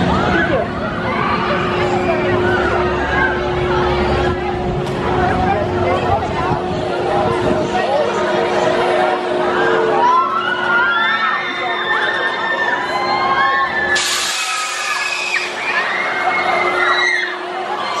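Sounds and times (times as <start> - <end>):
ride riders screaming: 0.0 - 5.8, 7.8 - 18.0
loud hiss: 14.0 - 15.2.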